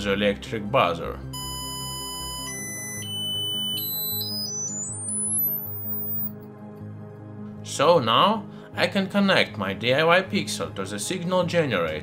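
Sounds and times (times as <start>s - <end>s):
shrill buzzer beep rising in pitch: 1.4s - 6.4s.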